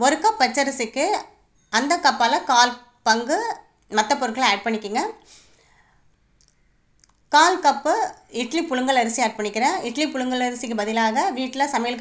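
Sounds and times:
woman speaking: 0:00.0 - 0:05.2, 0:07.3 - 0:12.0.

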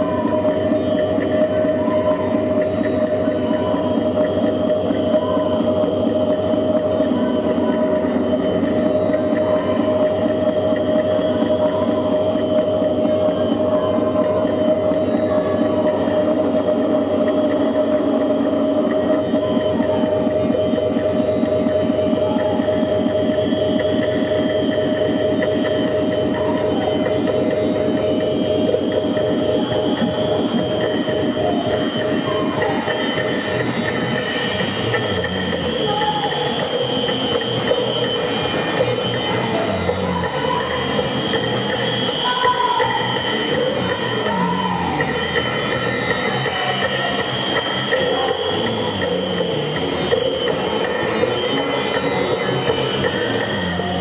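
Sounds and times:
dense layered electronic noise: 0:00.0 - 0:54.0
droning electronic tone: 0:00.0 - 0:54.0
fast even pulsing: 0:00.0 - 0:54.0.

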